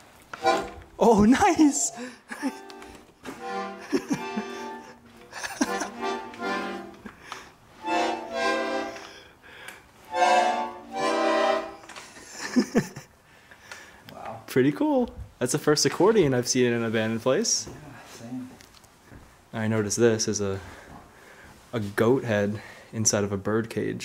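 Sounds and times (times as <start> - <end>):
button accordion chords: 0.4 - 0.9, 2.5 - 7.2, 7.8 - 9.2, 10.1 - 11.9.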